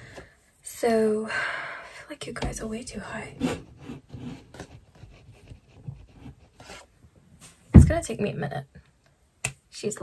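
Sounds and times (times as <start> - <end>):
handling rubbing and scraping: 3.2 - 8.0.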